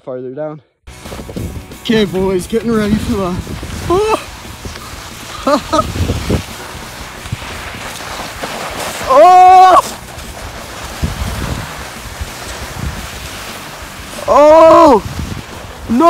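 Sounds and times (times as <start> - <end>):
snow hissing and scraping: 0.9 - 16.0
person yelling: 3.8 - 4.3, 9.0 - 10.0, 14.2 - 15.2
person laughing: 3.8 - 4.4, 5.2 - 6.2.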